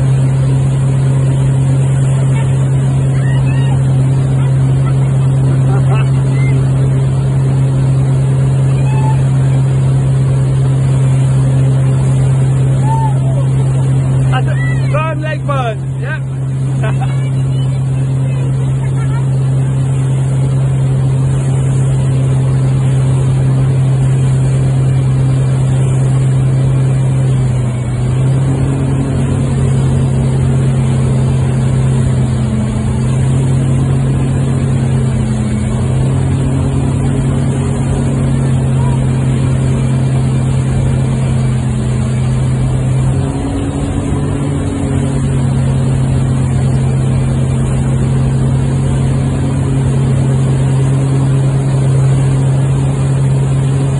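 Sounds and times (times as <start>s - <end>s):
boat engine humming: 0.0s - 53.9s.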